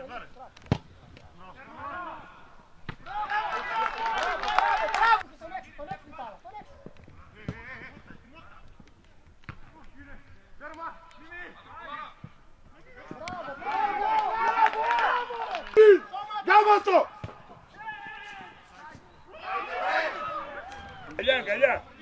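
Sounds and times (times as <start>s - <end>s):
voices shouting: 1.5s - 6.8s, 12.8s - 22.0s.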